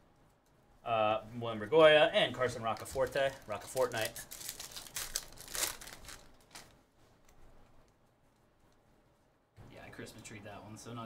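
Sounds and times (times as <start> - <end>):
foil wrapper tearing and crinkling: 2.6 - 6.8.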